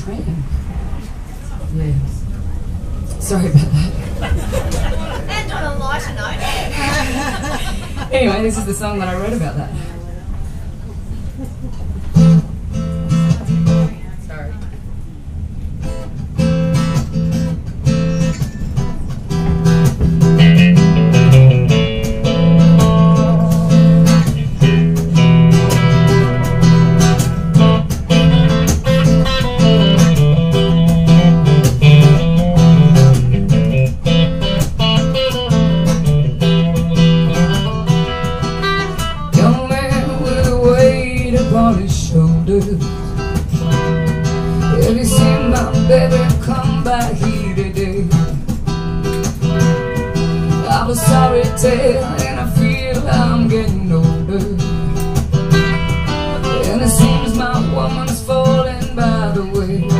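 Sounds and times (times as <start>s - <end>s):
acoustic guitar: 2.9s - 14.5s, 15.2s - 59.9s
electric guitar: 15.8s - 59.9s.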